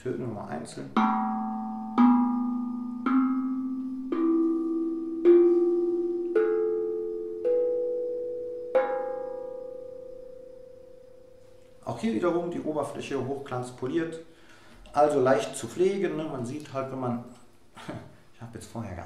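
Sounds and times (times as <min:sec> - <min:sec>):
steel tongue drum notes: 0:00.4 - 0:12.8.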